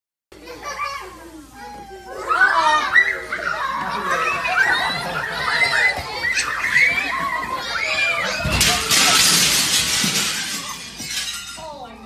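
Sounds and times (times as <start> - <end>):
young children chattering: 0.4 - 12.0.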